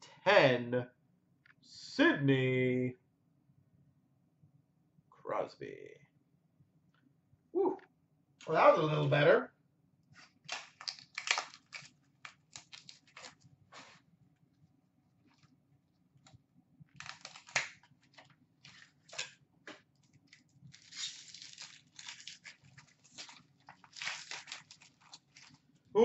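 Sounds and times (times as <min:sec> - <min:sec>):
plastic wrapper crinkling and tearing: 0:10.2 - 0:13.4, 0:16.9 - 0:25.8.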